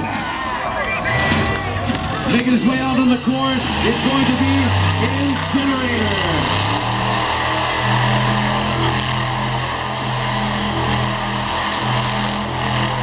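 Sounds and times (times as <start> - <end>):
loud truck engine running: 0.0 - 13.0.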